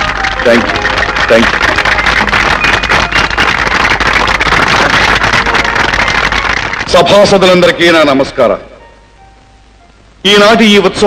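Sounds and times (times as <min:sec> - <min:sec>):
audience applause: 0:00.0 - 0:07.7.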